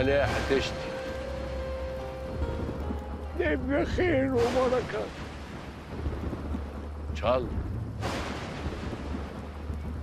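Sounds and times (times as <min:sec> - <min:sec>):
low rolling thunder: 0:00.0 - 0:10.0
rain hissing: 0:00.0 - 0:10.0.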